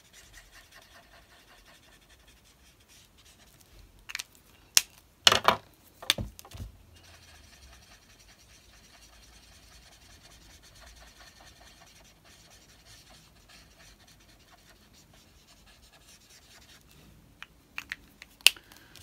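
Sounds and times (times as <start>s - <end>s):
marker scratching on card: 0.0s - 3.4s, 7.0s - 16.8s.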